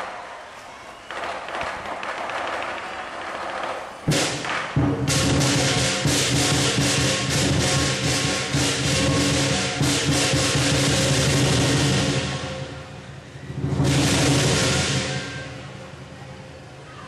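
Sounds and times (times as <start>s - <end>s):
drum: 4.1s - 12.7s, 13.5s - 15.4s
loud cymbal crash: 4.1s - 15.8s
clashing cymbals: 4.1s - 15.9s.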